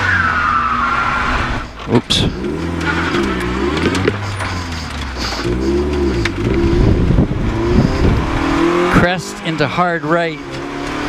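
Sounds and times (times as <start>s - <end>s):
car engine revving inside cabin: 0.0s - 11.0s.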